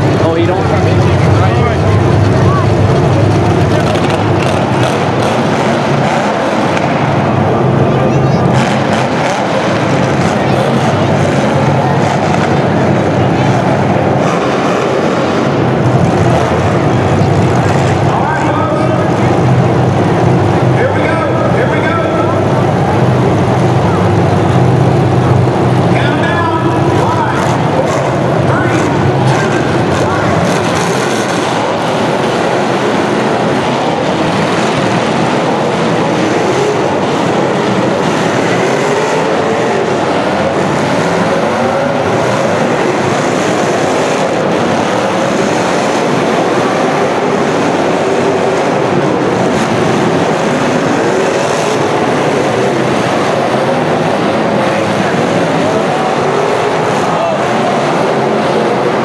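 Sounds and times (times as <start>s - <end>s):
car engines running loudly: 0.0s - 59.0s.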